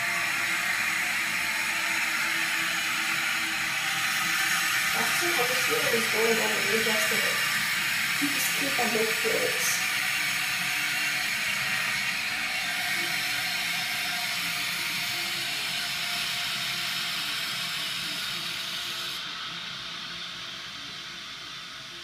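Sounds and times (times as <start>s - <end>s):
toilet tank refilling hiss: 0.0s - 21.9s.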